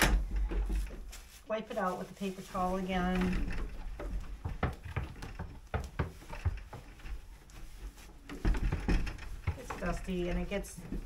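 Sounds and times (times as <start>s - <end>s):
paper towel rubbing plastic bucket: 0.8s - 3.4s.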